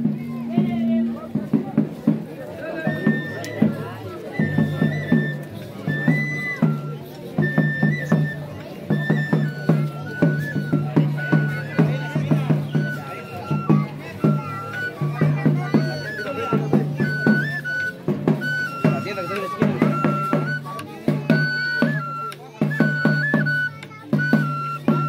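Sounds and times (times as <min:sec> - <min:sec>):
stick-struck drum beat: 0:00.0 - 0:25.0
wooden flute melody: 0:00.0 - 0:25.0.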